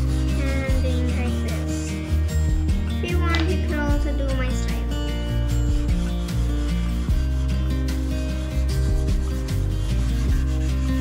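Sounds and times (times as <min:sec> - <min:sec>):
instrumental music: 0:00.0 - 0:11.0
pastel rasping on paper: 0:00.0 - 0:11.0.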